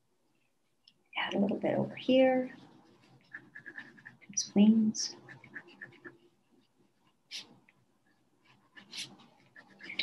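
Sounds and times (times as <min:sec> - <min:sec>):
crayon rubbing on paper: 0:02.0 - 0:07.6, 0:08.4 - 0:10.0.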